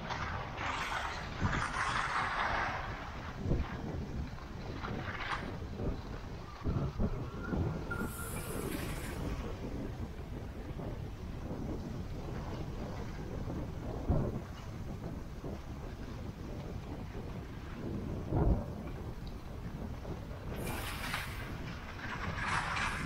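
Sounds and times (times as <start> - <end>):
sliding over packed snow: 0.0 - 6.5, 7.6 - 14.6, 19.0 - 23.0
wind rumbling on microphone: 0.0 - 23.0.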